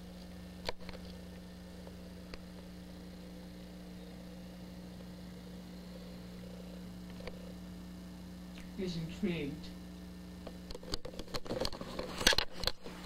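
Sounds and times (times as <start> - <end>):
low electrical hum: 0.0 - 13.0
cat purring: 1.2 - 7.9.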